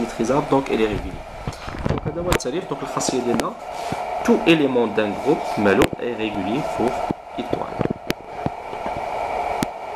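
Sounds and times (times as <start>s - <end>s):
steady background hum: 0.0s - 9.9s.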